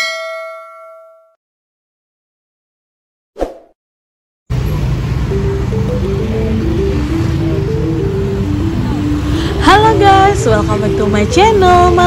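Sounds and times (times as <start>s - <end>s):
bell ding: 0.0s - 1.4s.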